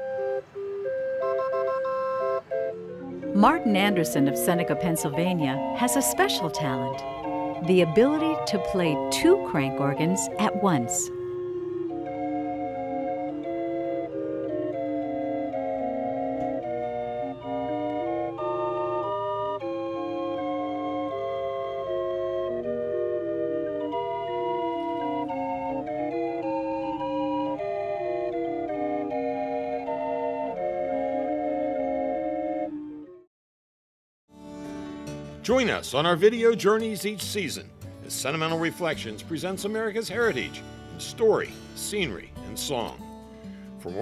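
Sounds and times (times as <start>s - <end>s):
hand-cranked street organ playing: 0.0s - 33.0s.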